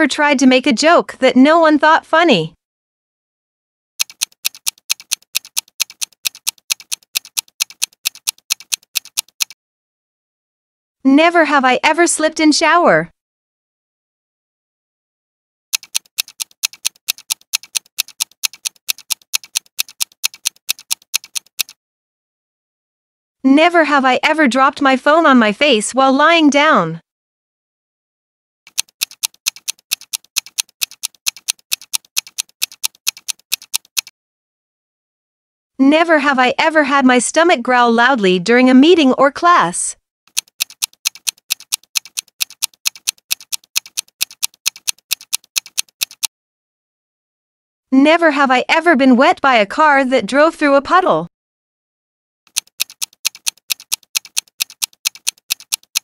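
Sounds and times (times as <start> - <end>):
rapid clock ticking: 4.0 - 9.6, 15.7 - 21.8, 28.7 - 34.1, 40.3 - 46.3, 52.5 - 56.0.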